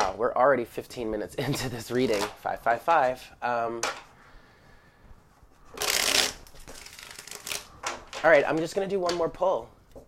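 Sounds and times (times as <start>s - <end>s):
cards riffle-shuffled: 5.7s - 7.7s.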